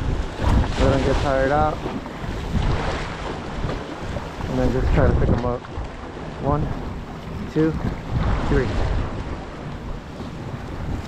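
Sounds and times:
waves washing against rocks: 0:00.0 - 0:06.6, 0:07.4 - 0:09.3
wind buffeting microphone: 0:00.0 - 0:11.0.

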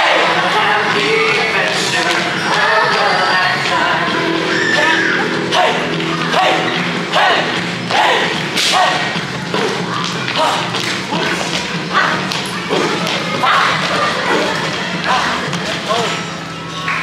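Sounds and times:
dance music: 0:00.0 - 0:17.0.

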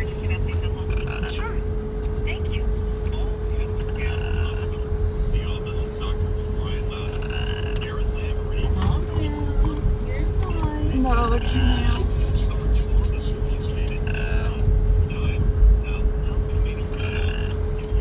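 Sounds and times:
car engine and road rumble: 0:00.0 - 0:18.0
faint voices: 0:00.0 - 0:18.0
thin steady hum: 0:00.0 - 0:18.0.

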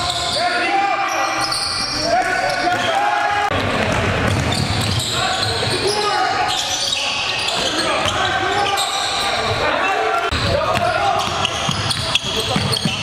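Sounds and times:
players' voices echoing: 0:00.0 - 0:13.0
basketball bouncing on hardwood floor: 0:03.8 - 0:05.0.

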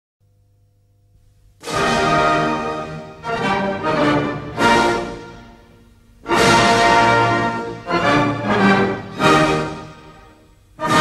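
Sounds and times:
orchestral ballet music: 0:01.6 - 0:11.0.

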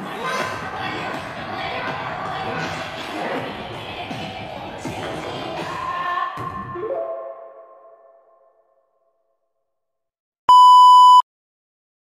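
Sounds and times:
music: 0:00.0 - 0:08.7
electronic beep: 0:10.5 - 0:11.2.

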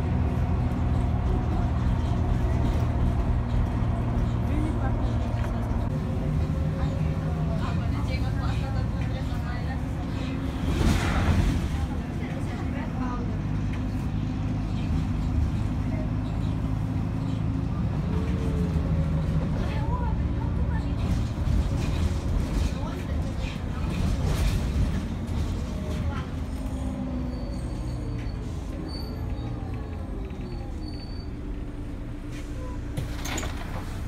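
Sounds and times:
bus engine running: 0:00.0 - 0:34.0
indistinct passenger voices: 0:00.0 - 0:34.0
road rumble: 0:00.0 - 0:34.0.

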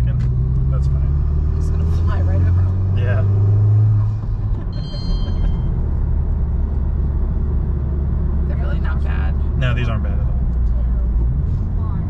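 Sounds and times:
car engine hum in cabin: 0:00.0 - 0:12.0.

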